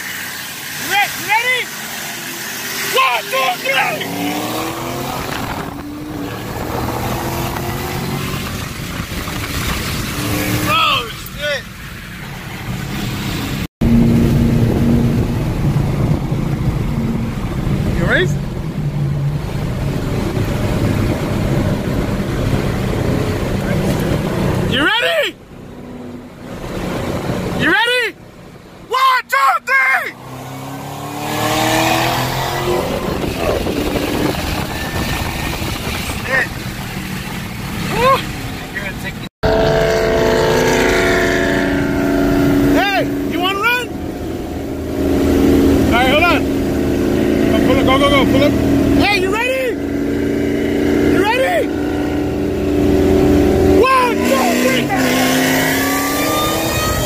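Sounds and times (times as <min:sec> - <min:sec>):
road and wind noise: 0:00.0 - 0:57.0
car engine revving in cabin: 0:00.3 - 0:11.3, 0:12.8 - 0:24.8, 0:30.2 - 0:57.0.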